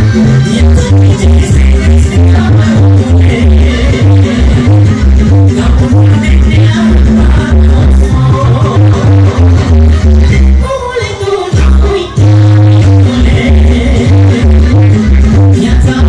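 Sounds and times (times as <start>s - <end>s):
amplified music with heavy bass beat: 0.0s - 16.0s.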